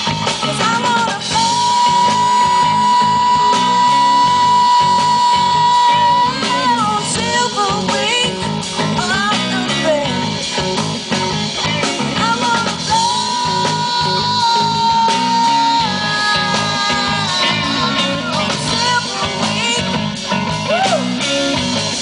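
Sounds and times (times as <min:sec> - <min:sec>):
bending guitar melody: 0:00.0 - 0:22.0
live rock band playing: 0:00.0 - 0:22.0.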